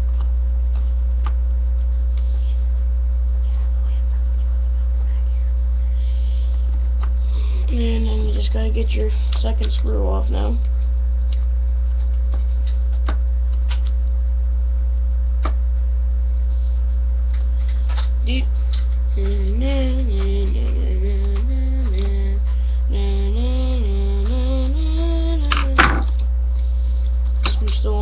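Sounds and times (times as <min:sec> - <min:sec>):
low electrical hum: 0:00.0 - 0:28.0
person humming a tune: 0:19.1 - 0:26.2.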